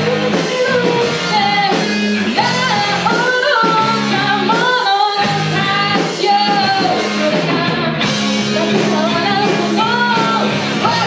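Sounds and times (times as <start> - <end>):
bass guitar: 0.0 - 11.0
drums: 0.0 - 11.0
electric guitar: 0.0 - 11.0
person singing: 0.0 - 11.0.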